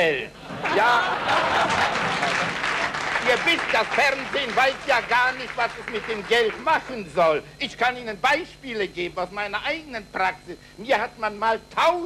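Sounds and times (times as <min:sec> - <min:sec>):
audience laughing: 0:00.4 - 0:04.3
audience applauding: 0:00.6 - 0:06.7.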